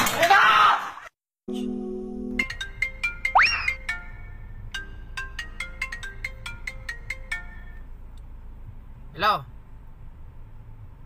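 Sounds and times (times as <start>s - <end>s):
mobile phone ringtone: 2.4s - 7.8s.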